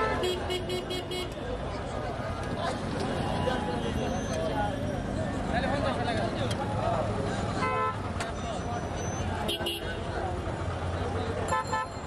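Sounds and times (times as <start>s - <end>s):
vehicle horn honking: 0.0s - 1.4s, 7.6s - 8.0s, 11.5s - 12.0s
crowd voices: 0.0s - 12.0s
traffic: 0.0s - 12.0s.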